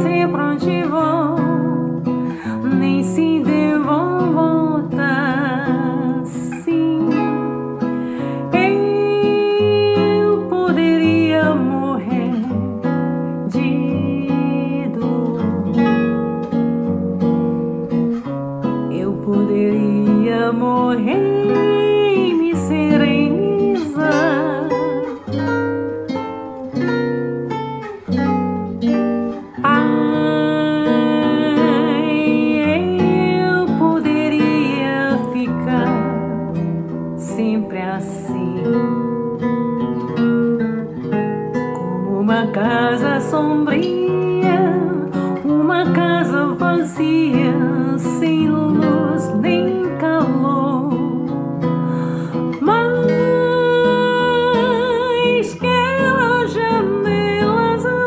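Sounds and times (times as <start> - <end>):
woman singing with vibrato: 0.0 - 12.8, 13.4 - 15.9, 18.9 - 25.6, 29.4 - 39.0, 41.7 - 58.0
plucked acoustic guitar: 0.0 - 58.0.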